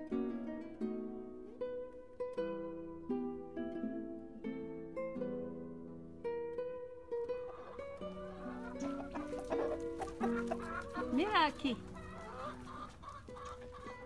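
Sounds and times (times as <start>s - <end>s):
plucked-string music: 0.0s - 14.0s
chickens clucking: 7.0s - 14.0s.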